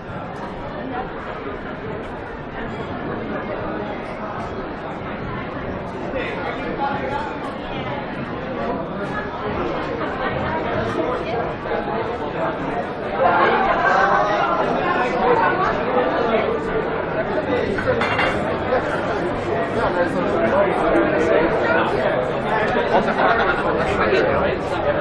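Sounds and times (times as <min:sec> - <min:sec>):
crowd chatter: 0:00.0 - 0:25.0.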